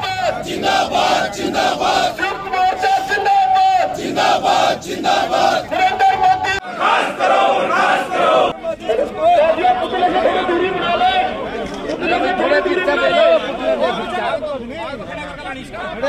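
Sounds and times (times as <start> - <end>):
crowd of men chanting: 0.0 - 5.8, 6.6 - 8.6
many voices shouting and talking: 0.0 - 16.0.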